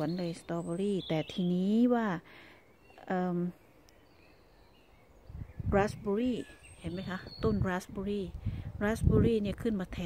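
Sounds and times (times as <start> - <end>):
woman's voice: 0.0 - 2.3, 3.0 - 3.6, 5.6 - 10.0.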